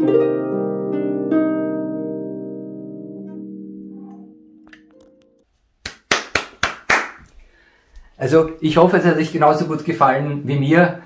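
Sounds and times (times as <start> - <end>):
harp chord: 0.0 - 5.4
crisp hand claps: 5.8 - 7.4.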